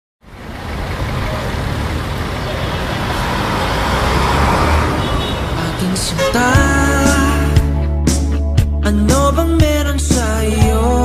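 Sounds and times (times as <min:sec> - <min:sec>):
traffic noise: 0:00.2 - 0:08.0
indistinct voices: 0:02.3 - 0:07.9.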